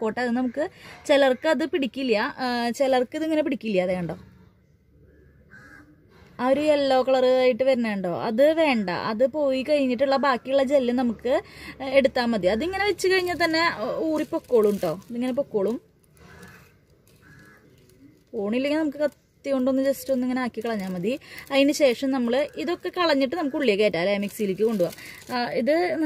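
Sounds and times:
woman's voice: 0.0s - 4.3s, 6.4s - 15.9s, 18.3s - 26.0s
faint bird call: 4.2s - 6.3s.

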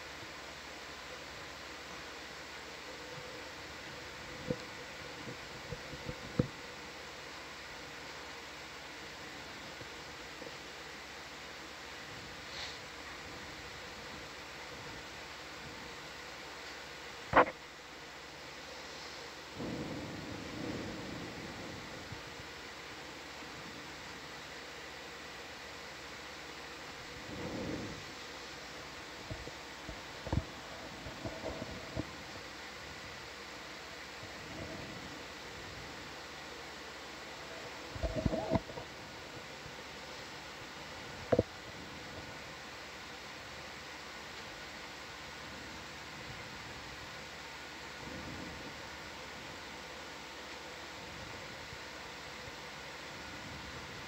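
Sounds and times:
audio channel hiss: 0.0s - 54.0s
soft low rumbles: 1.8s - 54.0s.

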